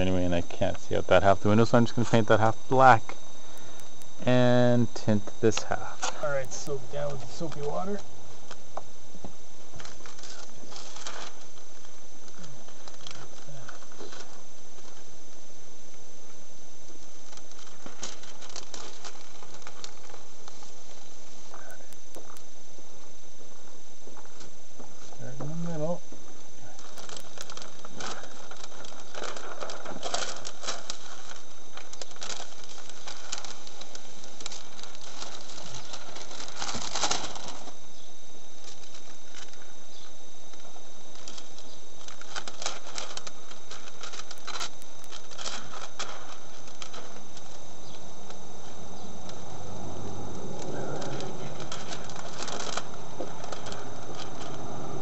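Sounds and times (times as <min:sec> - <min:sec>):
plastic film crinkling: 0:00.0 - 0:55.0
steady hiss: 0:00.0 - 0:55.0.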